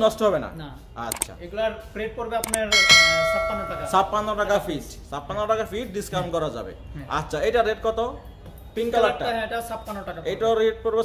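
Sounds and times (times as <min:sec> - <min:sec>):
bell chime ringing: 0:02.7 - 0:04.6.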